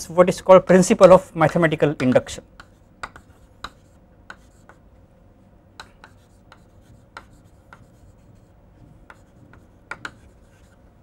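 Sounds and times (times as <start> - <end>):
chalk tapping on chalkboard: 1.4 - 4.8, 5.8 - 10.8.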